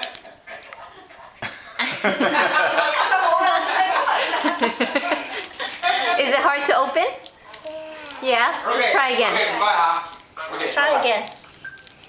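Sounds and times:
toddler whining: 7.6 - 8.3
plastic wrapper crinkling: 10.0 - 12.0.

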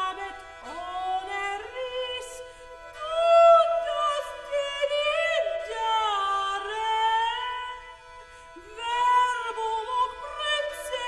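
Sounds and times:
woman singing: 0.0 - 7.9, 8.6 - 11.0.

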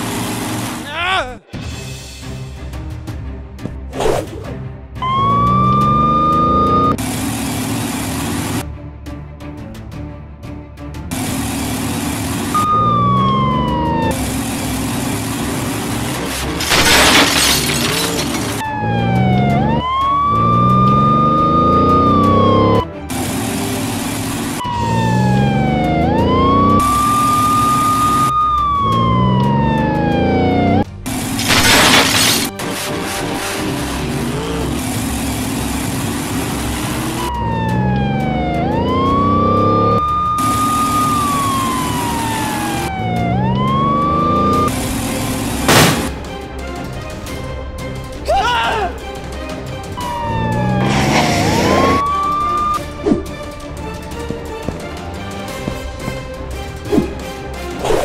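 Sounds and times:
police siren wailing: 5.0 - 7.0, 12.0 - 16.0, 16.9 - 22.9, 23.6 - 30.9, 33.9 - 45.7, 49.9 - 53.0.

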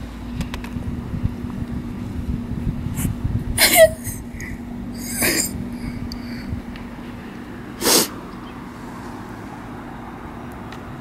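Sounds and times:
low hum: 0.0 - 7.7
wind buffeting microphone: 0.4 - 3.6, 4.2 - 7.3.

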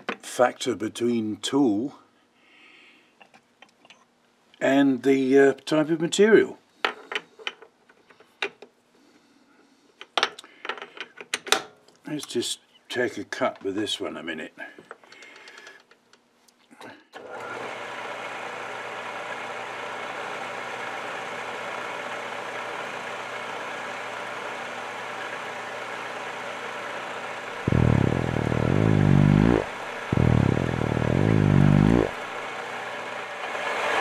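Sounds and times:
loud wavering fart-like blurts: 27.7 - 32.2.

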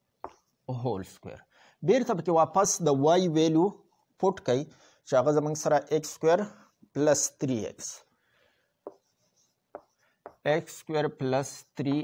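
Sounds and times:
marker tapping on whiteboard: 0.2 - 0.5, 8.8 - 10.7, 11.8 - 12.0.

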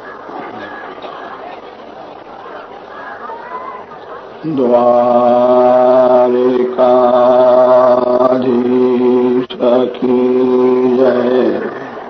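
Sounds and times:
man chanting: 4.4 - 12.0.

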